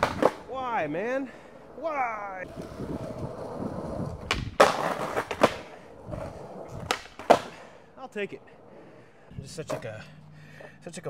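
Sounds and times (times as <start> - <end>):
skateboard tail pop: 0.0 - 0.4, 4.2 - 5.7, 6.7 - 7.5
skateboard clacks: 0.0 - 0.5, 2.4 - 7.6
skateboard trucks grinding curb: 0.0 - 10.9
wheels rolling on concrete: 0.0 - 10.9.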